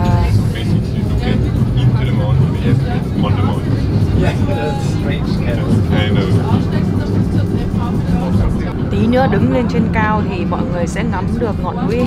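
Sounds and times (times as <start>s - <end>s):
funicular car rumbling: 0.0s - 12.0s.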